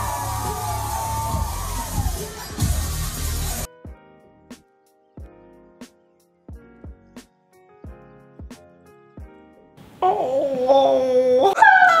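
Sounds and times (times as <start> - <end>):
person's falsetto whining wail: 10.0 - 12.0.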